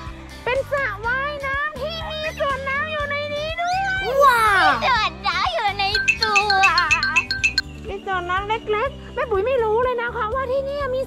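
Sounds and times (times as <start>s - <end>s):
children squealing and shouting: 3.6s - 5.2s.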